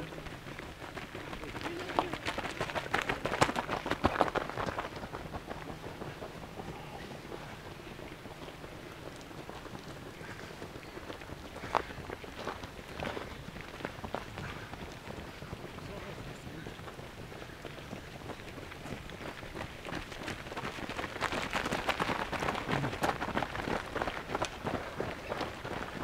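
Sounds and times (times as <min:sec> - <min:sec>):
running footsteps on gravel: 0:00.0 - 0:26.0.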